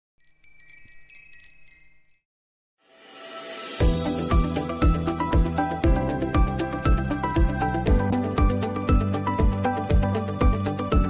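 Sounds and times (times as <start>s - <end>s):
high-pitched chimes ringing: 0.2s - 2.2s.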